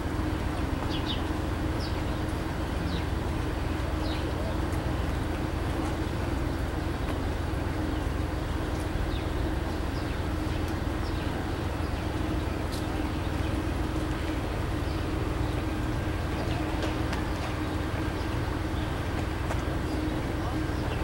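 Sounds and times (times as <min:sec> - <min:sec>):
standing train hum: 0:00.0 - 0:21.0.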